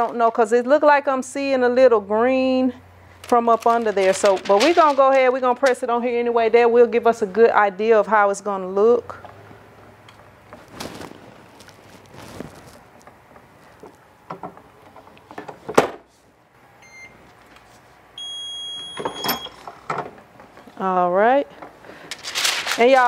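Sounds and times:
electronic timer beeping: 18.2s - 19.6s.

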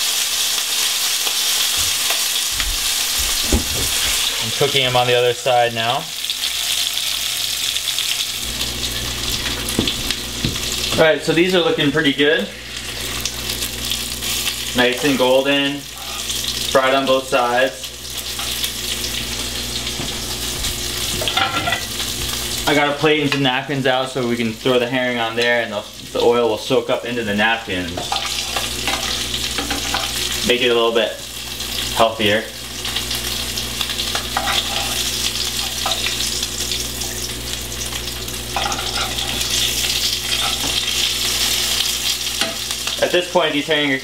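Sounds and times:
fish frying in hot oil: 0.0s - 44.0s.

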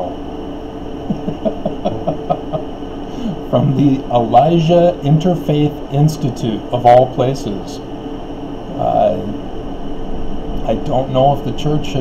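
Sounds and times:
man chuckling: 1.0s - 3.4s.

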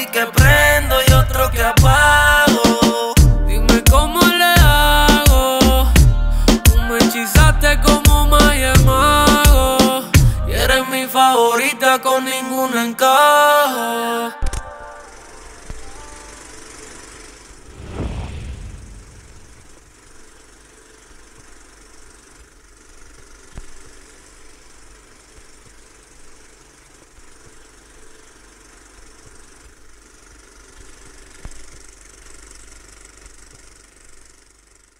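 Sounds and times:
low mechanical running noise: 14.4s - 34.9s
low rumbling: 17.6s - 20.0s.

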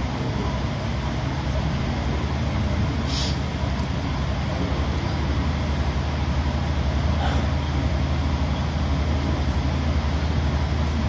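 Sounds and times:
rushing background noise: 0.0s - 11.0s
short hiss: 3.0s - 3.4s.

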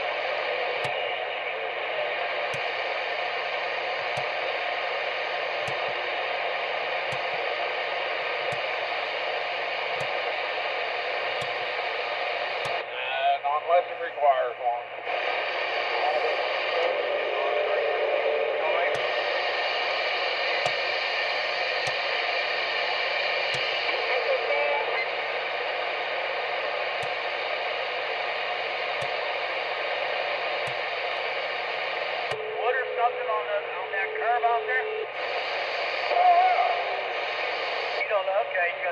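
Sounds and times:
faint garbled radio voices: 0.0s - 38.9s
radio static: 0.0s - 38.9s
steady radio whistle: 0.0s - 38.9s.

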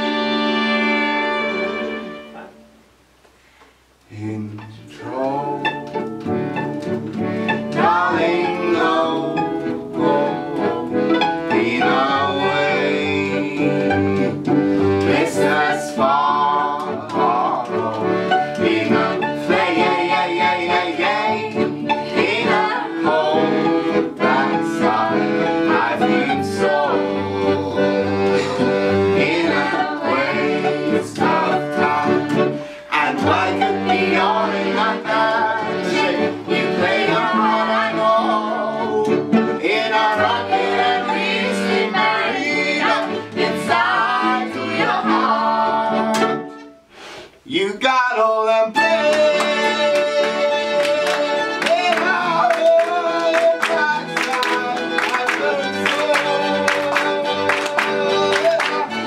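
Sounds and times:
cello: 0.0s - 2.7s, 4.1s - 47.1s, 48.7s - 59.0s
accordion: 0.0s - 2.8s, 4.4s - 47.4s, 48.7s - 59.0s
people singing: 4.2s - 6.7s, 7.4s - 46.6s, 47.5s - 59.0s
fiddle: 4.5s - 46.8s, 48.8s - 59.0s.

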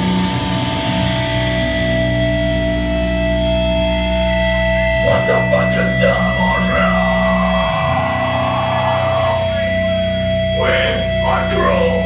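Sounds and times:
heavy metal band playing: 0.0s - 12.0s
person's voice: 5.0s - 9.9s, 10.6s - 12.0s.

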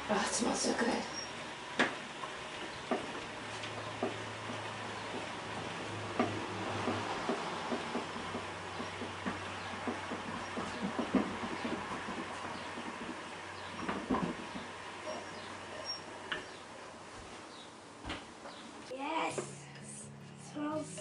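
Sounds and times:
honey extractor whirring hum: 0.0s - 21.0s
light clicks and knocks: 1.8s - 16.6s.

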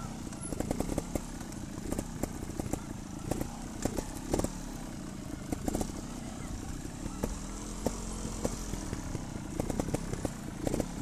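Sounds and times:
motorcycle engine at low revs: 0.0s - 11.0s
sharp knocks and rattles: 0.1s - 4.6s, 7.2s - 11.0s.

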